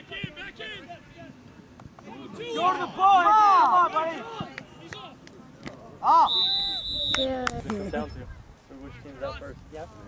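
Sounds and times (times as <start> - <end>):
referee's whistle: 6.2 - 7.3.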